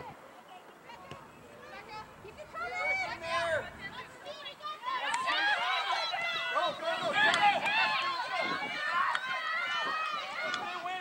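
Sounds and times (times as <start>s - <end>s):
excited voices shouting and cheering: 1.6s - 11.0s.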